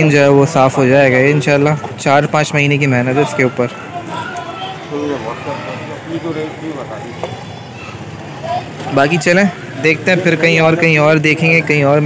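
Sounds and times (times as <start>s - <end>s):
low traffic hum: 0.0s - 12.0s.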